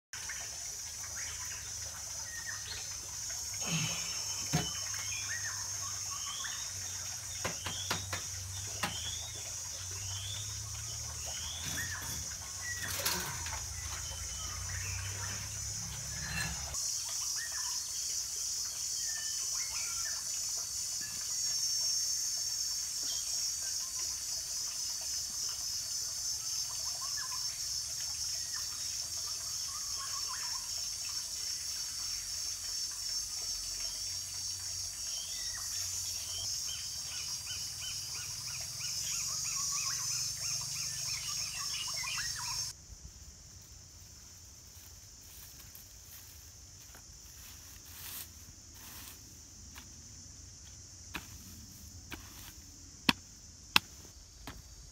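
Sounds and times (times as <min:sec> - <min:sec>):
bird chirps: 0:07.4 - 0:16.8, 0:35.2 - 0:42.8
high-pitched insect drone: 0:44.7 - 0:52.6.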